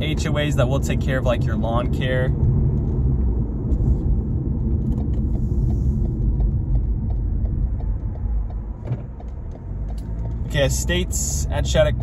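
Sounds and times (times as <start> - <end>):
car cabin road rumble: 0.0 - 12.0
turn signal ticking: 0.0 - 12.0.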